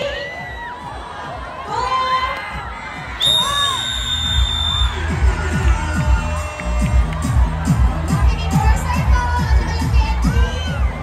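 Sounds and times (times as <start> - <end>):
crowd cheering and shouting: 0.0 - 11.0
high whistle blast: 3.2 - 5.0
loud music with heavy bass beat: 4.4 - 11.0.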